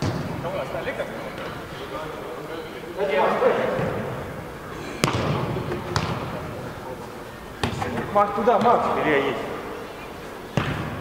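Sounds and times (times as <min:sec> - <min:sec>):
football kick: 0:05.0 - 0:06.2.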